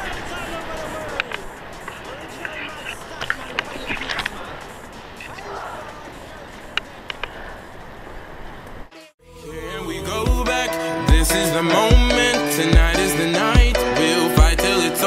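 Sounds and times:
faint voices: 0.0 - 8.0.

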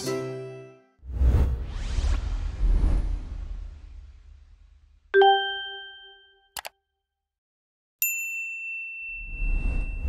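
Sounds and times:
bright high bell ding: 5.2 - 6.5, 8.0 - 10.0
low chime: 5.2 - 6.5, 8.0 - 10.0
double mouse click: 6.6 - 6.8.

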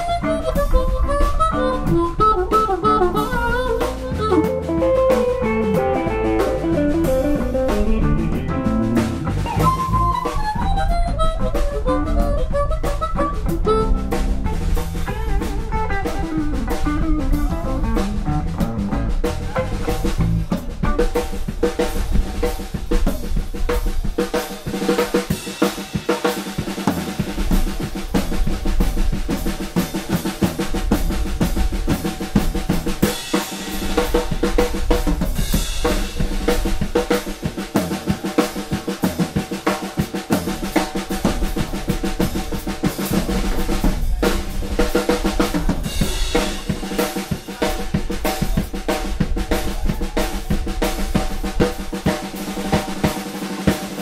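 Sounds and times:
drum kit hits: 0.0 - 54.0
live blues band: 0.0 - 54.0.

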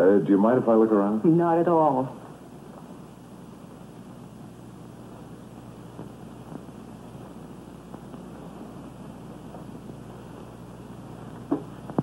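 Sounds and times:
film soundtrack hiss and hum: 0.0 - 12.0
faint knock: 11.4 - 12.0.

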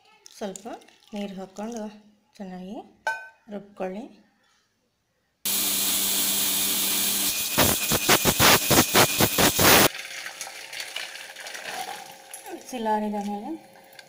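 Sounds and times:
mixer grinder whirring: 5.5 - 9.9.

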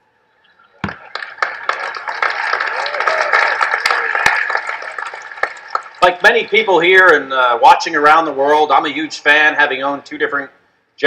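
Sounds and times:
large audience applauding: 0.8 - 6.8.

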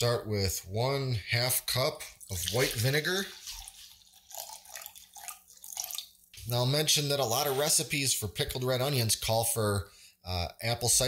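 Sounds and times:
liquid trickling into cup: 2.2 - 6.5.

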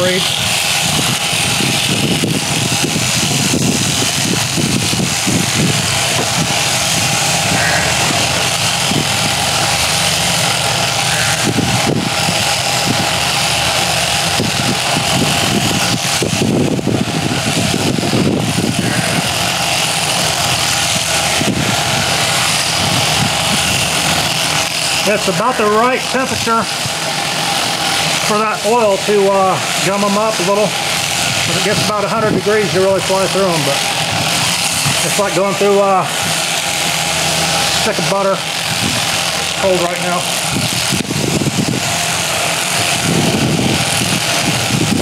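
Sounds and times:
electric shears clipping fleece: 0.0 - 45.0.

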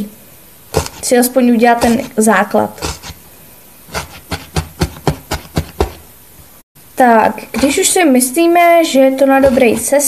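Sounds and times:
felting needle stabbing foam: 0.7 - 3.3, 3.9 - 6.1, 7.6 - 8.0, 9.3 - 10.0.

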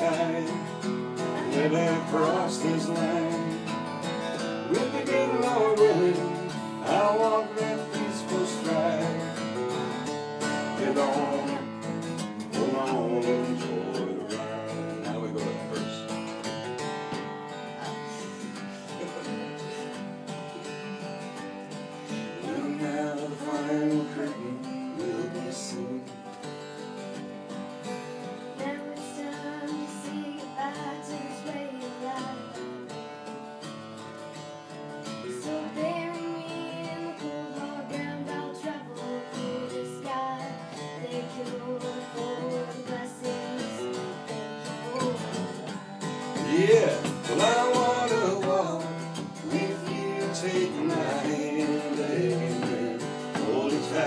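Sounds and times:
acoustic guitar picked and strummed: 0.0 - 54.0.

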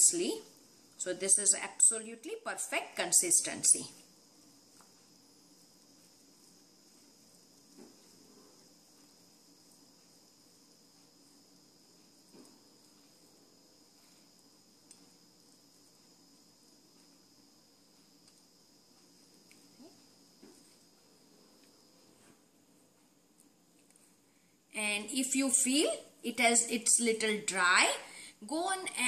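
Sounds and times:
faint high whine: 0.0 - 29.0.

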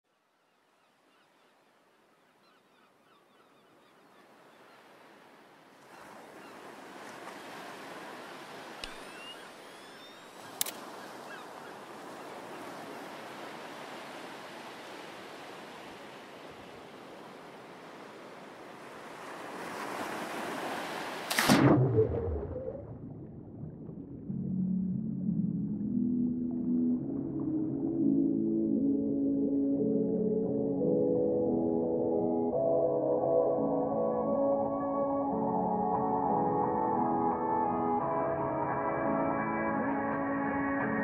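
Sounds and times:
sea surf: 4.3 - 22.9
camera shutter clicks: 10.6 - 10.8.

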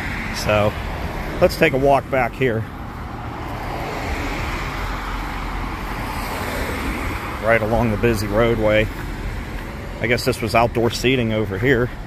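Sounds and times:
cars passing close by: 0.0 - 12.0.

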